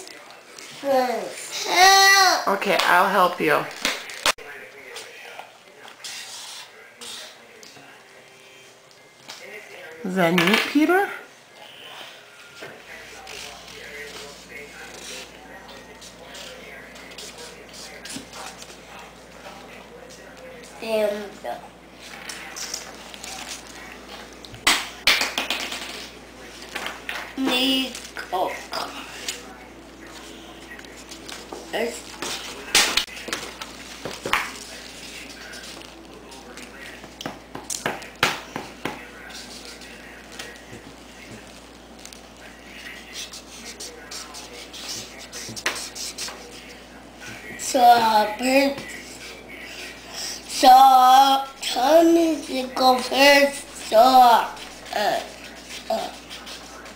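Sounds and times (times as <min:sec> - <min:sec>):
paper and plastic bag rustling: 0:22.0 - 0:24.5, 0:29.0 - 0:37.0
marker scribbling on paper: 0:42.9 - 0:46.6, 0:53.8 - 0:56.9.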